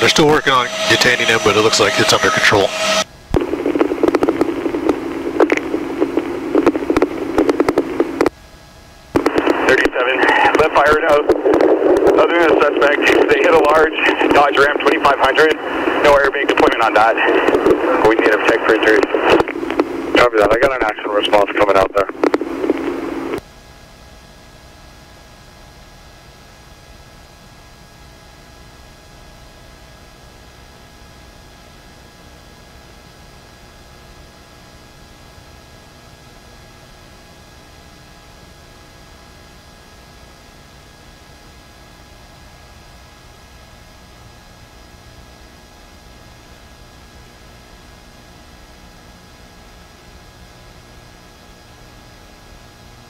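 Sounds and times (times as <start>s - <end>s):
voice over radio: 0.0s - 3.0s, 9.2s - 22.8s
radio channel hiss and hum: 0.0s - 53.0s
police radio crackling hiss: 0.1s - 8.2s, 9.2s - 23.4s.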